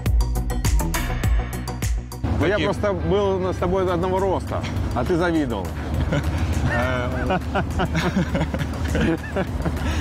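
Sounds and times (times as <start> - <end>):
motorboat engine drone: 1.7 - 10.0
men laughing: 5.6 - 10.0.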